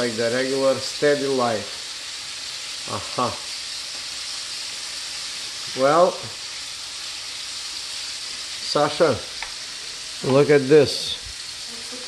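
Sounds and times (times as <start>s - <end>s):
steak sizzling in a pan: 0.0s - 12.0s.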